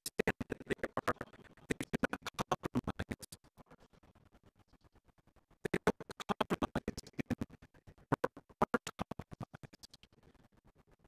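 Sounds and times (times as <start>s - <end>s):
glitching stuttering preaching voice: 0.1s - 3.3s, 5.6s - 7.5s, 8.1s - 9.8s.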